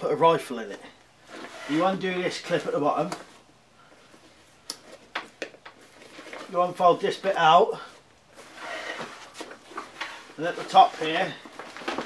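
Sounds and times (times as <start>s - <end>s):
fabric handling: 1.1s - 12.0s.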